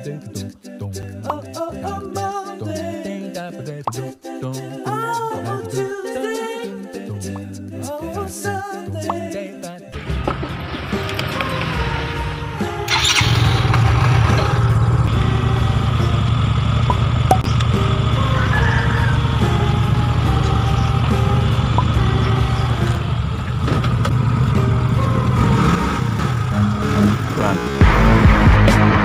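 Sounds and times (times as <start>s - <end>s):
background music: 0.0s - 29.0s
scooter engine idling: 10.0s - 28.3s.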